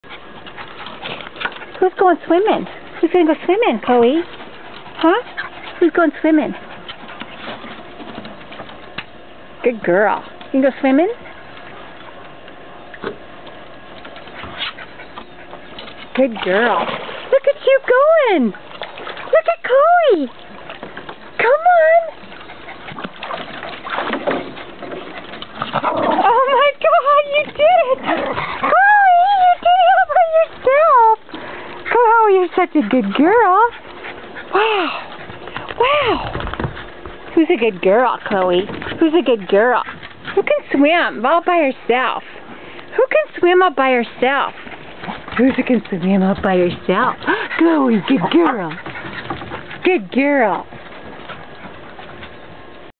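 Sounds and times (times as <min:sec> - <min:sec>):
dog breathy noises: 0:02.6 - 0:08.0, 0:33.0 - 0:37.2, 0:46.8 - 0:49.9.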